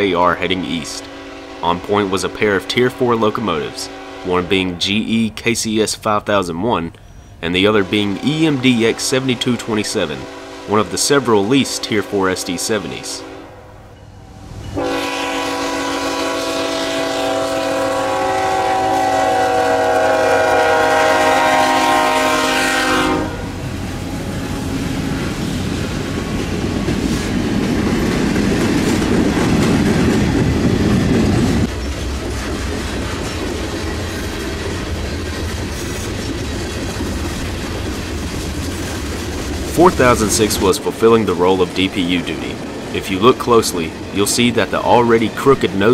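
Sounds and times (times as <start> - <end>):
diesel locomotive engine rumble: 0.0 - 45.9
freight train horn blast: 0.7 - 4.7, 7.6 - 25.4
freight cars clickety-clack: 25.9 - 45.9.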